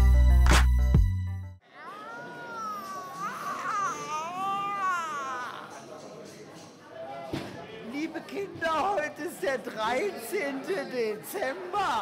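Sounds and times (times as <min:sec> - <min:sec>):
high-pitched wailing voice: 0:01.8 - 0:05.8.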